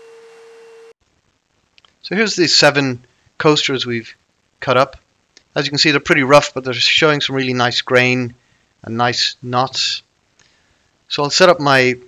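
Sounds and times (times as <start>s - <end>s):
low hiss: 0.4s - 12.0s.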